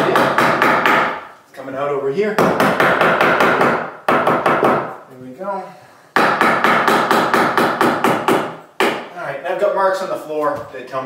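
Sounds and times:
hammer tapping wooden board: 0.0 - 1.2, 2.4 - 4.9, 6.2 - 9.1.

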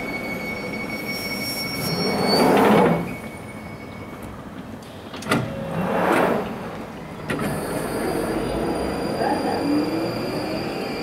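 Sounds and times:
train doors sliding open: 0.3 - 11.0
train clunk: 1.8 - 8.4.

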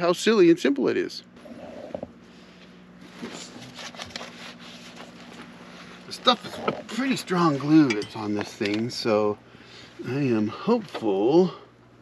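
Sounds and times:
plastic rustling and crinkling: 3.0 - 6.5.

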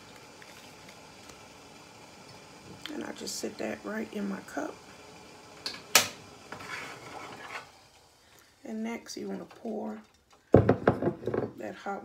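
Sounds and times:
kitchenware knock: 10.5 - 11.5.

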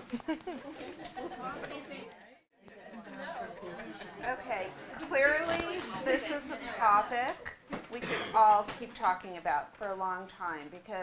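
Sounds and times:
audience chatter: 0.5 - 7.6.

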